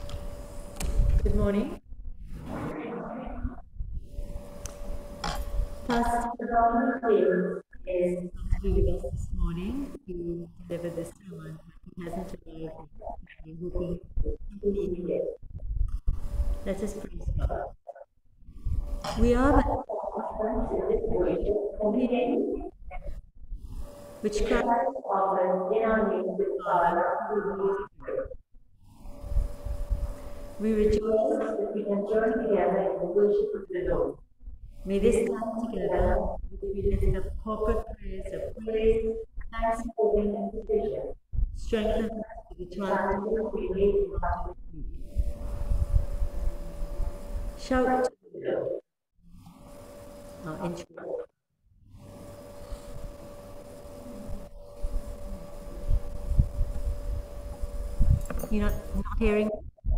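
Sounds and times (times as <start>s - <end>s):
person talking: 1.1s - 1.8s, 2.4s - 3.6s, 5.2s - 15.4s, 16.6s - 18.0s, 19.0s - 23.2s, 24.2s - 28.4s, 30.6s - 34.2s, 34.8s - 45.1s, 47.6s - 48.8s, 50.4s - 51.3s, 58.3s - 59.9s
voices over a video call: 5.2s - 15.4s, 19.0s - 23.2s, 24.3s - 28.4s, 30.6s - 34.2s, 34.8s - 45.0s, 47.6s - 48.8s.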